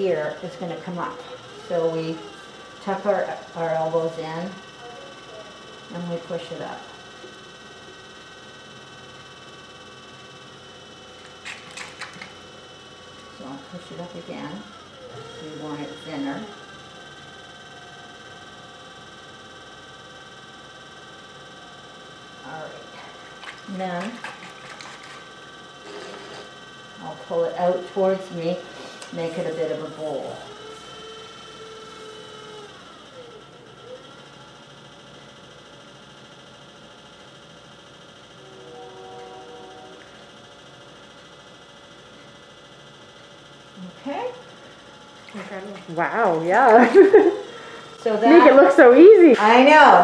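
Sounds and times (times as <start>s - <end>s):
potter's wheel motor whine: 0.0s - 50.0s.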